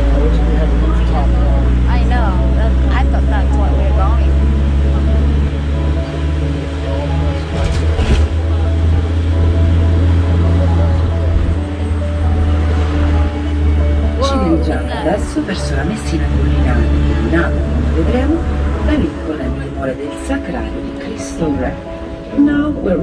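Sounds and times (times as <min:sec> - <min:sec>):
bus engine and road noise: 0:00.0 - 0:23.0
faint background music: 0:00.0 - 0:23.0
voices: 0:00.0 - 0:23.0.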